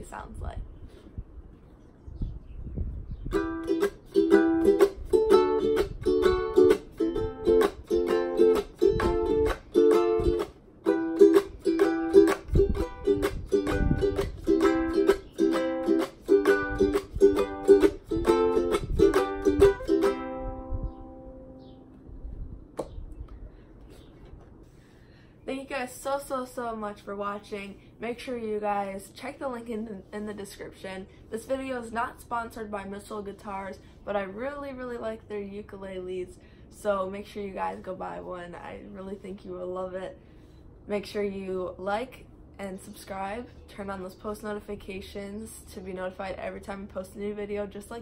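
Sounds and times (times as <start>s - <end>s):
ukulele strumming chords: 3.3s - 21.8s.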